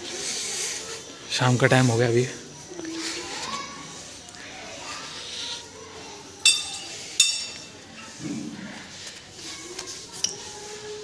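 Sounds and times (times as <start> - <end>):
faint chatter of voices: 0.0 - 11.0.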